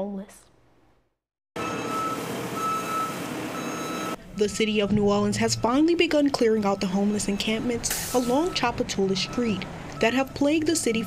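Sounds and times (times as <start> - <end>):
backup alarm beeping: 1.6 - 11.0.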